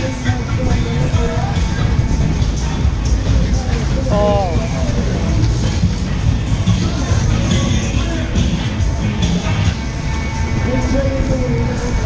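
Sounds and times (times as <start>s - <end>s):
fairground ride rumbling: 0.0s - 12.0s.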